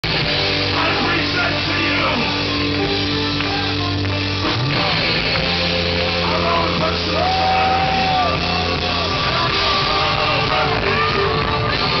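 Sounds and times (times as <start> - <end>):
punk band playing live: 0.0 - 12.0
man shouting into microphone: 0.8 - 2.3, 6.3 - 8.4.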